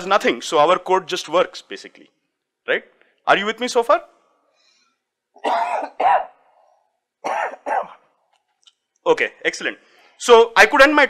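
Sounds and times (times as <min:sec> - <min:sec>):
man coughing into hands: 0:05.4 - 0:06.4, 0:07.2 - 0:08.0.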